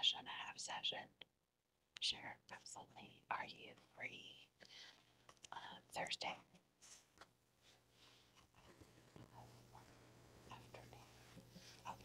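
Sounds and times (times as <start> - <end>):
woman whispering: 0.0 - 1.2, 2.0 - 4.6, 5.5 - 6.5, 10.5 - 12.0
faint low hum: 1.9 - 12.0.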